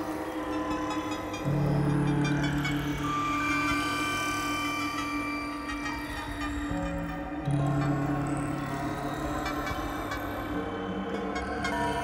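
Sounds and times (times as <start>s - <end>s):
dark ambient electronic music: 0.0s - 12.0s.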